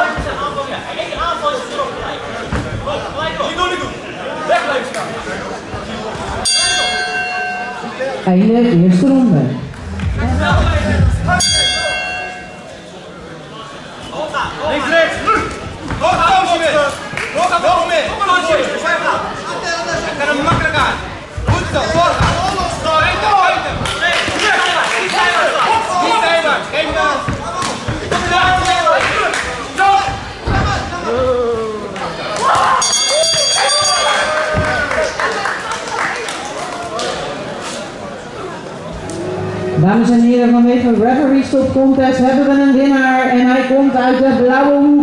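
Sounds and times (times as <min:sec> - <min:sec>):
crowd hubbub and voices: 0:00.0 - 0:45.0
boxing ring bell: 0:06.5 - 0:07.9, 0:11.4 - 0:12.7, 0:32.8 - 0:34.3.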